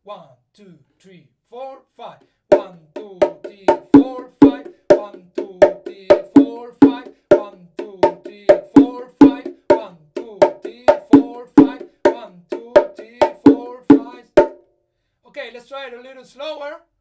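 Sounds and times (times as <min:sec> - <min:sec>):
bongo drums played by hand: 0:02.5 - 0:14.6.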